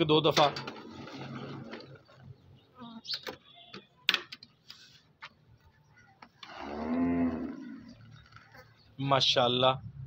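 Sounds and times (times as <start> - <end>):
cow mooing: 6.5 - 8.0.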